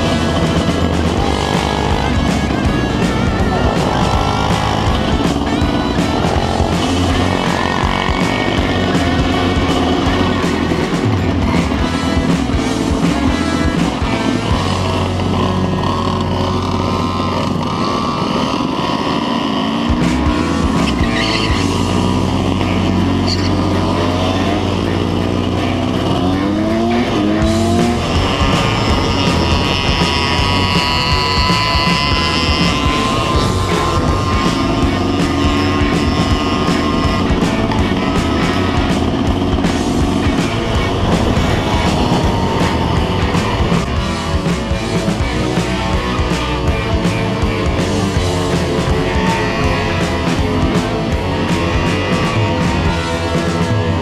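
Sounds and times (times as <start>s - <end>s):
motorcycle engines revving: 0.0s - 54.0s
music: 0.0s - 54.0s
street traffic: 0.0s - 54.0s.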